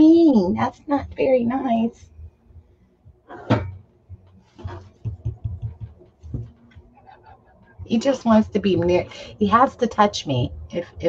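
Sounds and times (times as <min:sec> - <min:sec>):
knock on tabletop: 0:04.6 - 0:06.5.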